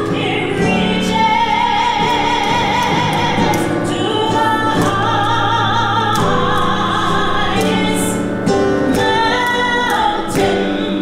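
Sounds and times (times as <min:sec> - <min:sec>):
woman singing into a microphone: 0:00.0 - 0:11.0.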